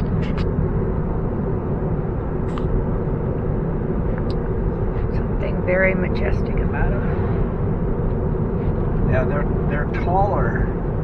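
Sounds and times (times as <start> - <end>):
road and tyre noise in car: 0.0 - 11.0.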